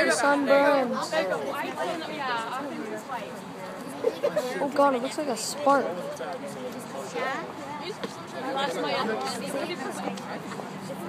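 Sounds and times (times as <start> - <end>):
people talking and chattering: 0.0 - 11.0.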